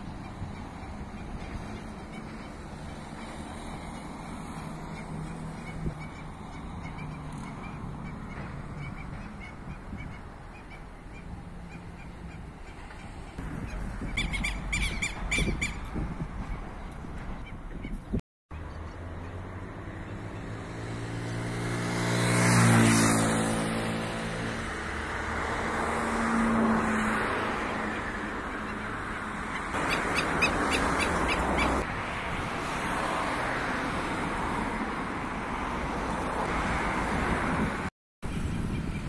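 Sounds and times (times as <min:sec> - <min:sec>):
steady traffic hum: 0:00.0 - 0:39.0
vehicle engine passing: 0:18.6 - 0:31.9.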